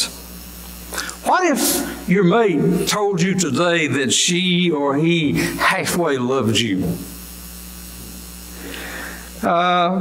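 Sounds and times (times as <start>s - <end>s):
electrical mains hum: 0.0s - 10.0s.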